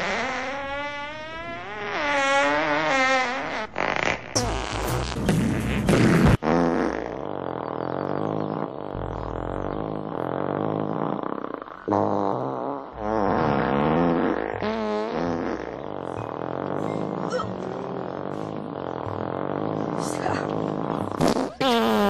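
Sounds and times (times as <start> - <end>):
long raspy fart: 0.0 - 22.0.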